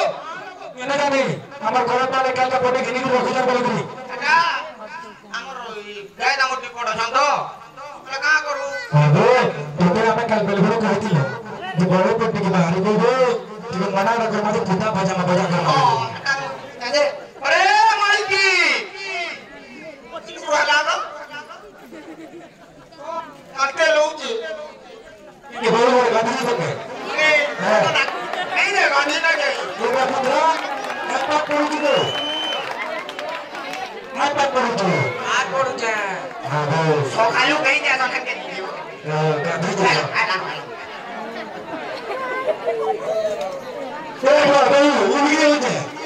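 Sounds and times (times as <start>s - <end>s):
dialogue: 0.0s - 46.0s
faint chatter of voices: 2.3s - 46.0s.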